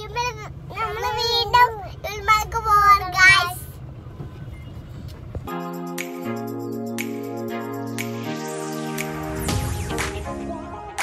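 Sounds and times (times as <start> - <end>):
car engine and road hum: 0.0 - 5.6.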